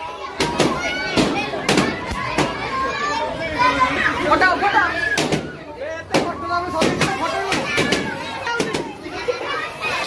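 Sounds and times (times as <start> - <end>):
children's voices and chatter: 0.0 - 10.0.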